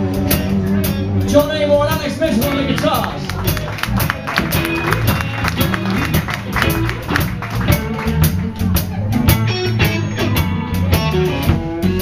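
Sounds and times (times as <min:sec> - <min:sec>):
bass guitar: 0:00.0 - 0:12.0
drum kit with cymbal strikes: 0:00.0 - 0:12.0
electric guitar: 0:02.3 - 0:12.0.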